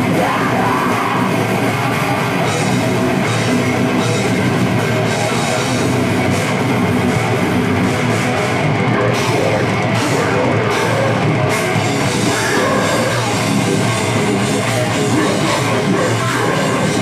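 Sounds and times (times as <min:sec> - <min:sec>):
heavy metal band playing: 0:00.0 - 0:17.0.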